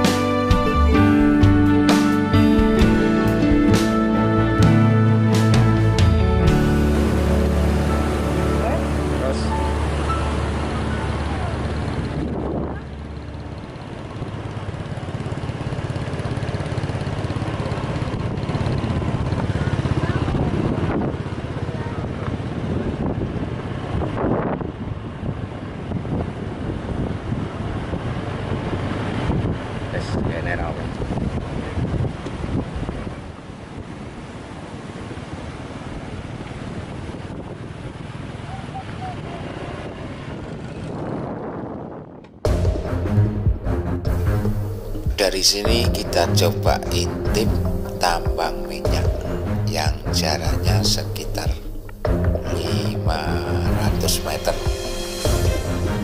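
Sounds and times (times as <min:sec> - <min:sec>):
motorcycle engines running: 0:00.0 - 0:56.0
waves washing: 0:06.0 - 0:22.7, 0:30.9 - 0:40.4, 0:42.7 - 0:56.0
wind buffeting microphone: 0:10.9 - 0:15.0, 0:17.2 - 0:42.8.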